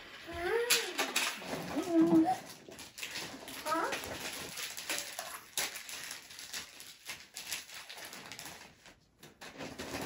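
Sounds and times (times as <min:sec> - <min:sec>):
toys and packaging rustling: 0:00.0 - 0:10.0.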